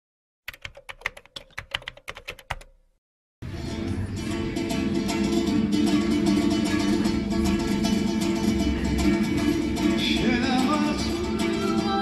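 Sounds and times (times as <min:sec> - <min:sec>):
keyboard typing clicks: 0:00.5 - 0:02.8
live plucked string music: 0:03.5 - 0:12.0.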